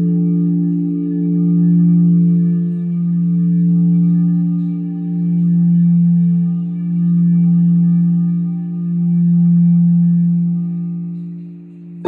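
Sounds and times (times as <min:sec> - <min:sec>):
singing bowl ringing: 0:00.0 - 0:12.0.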